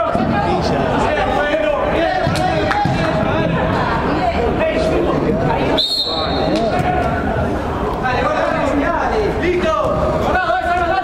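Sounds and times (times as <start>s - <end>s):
referee's whistle blast: 5.8s - 6.6s.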